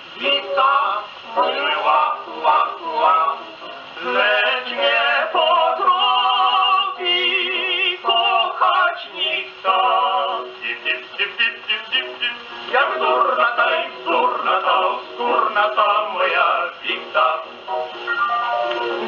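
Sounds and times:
gramophone dance record: 0.0s - 19.0s.

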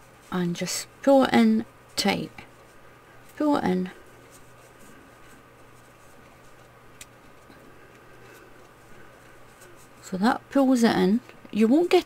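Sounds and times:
low steady hum: 0.0s - 12.0s
yarn rustling: 0.0s - 12.0s.

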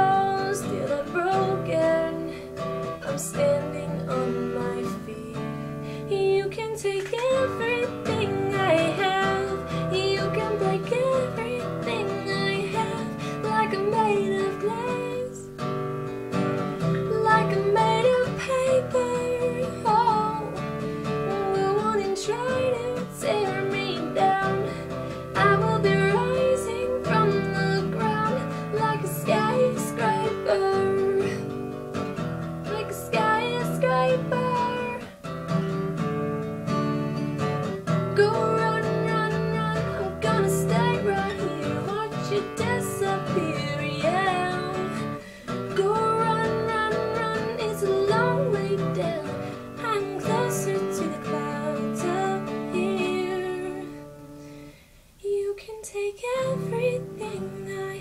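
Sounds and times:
woman singing: 0.0s - 15.7s, 16.8s - 35.3s, 37.1s - 54.3s, 55.2s - 58.0s
strummed acoustic guitar: 0.0s - 55.0s, 56.0s - 58.0s.

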